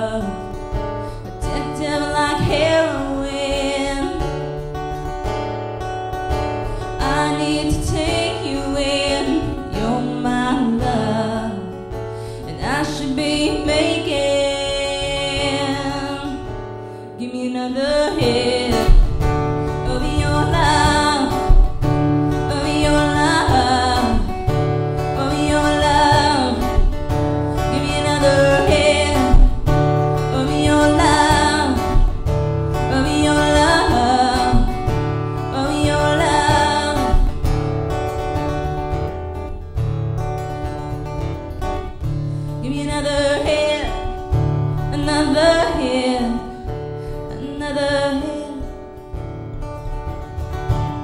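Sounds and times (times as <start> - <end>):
woman singing: 0.0 - 39.0, 40.4 - 49.2
strummed acoustic guitar: 0.0 - 51.0.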